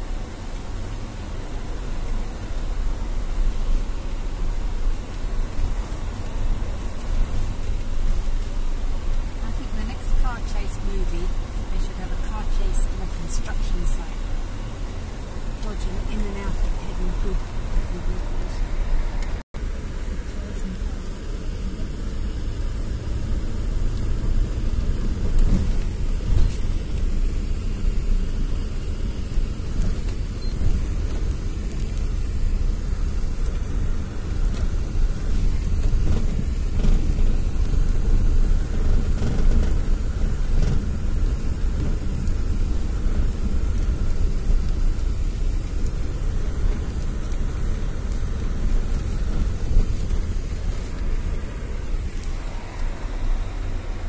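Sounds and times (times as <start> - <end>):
car driving on dirt road: 0.0 - 54.0.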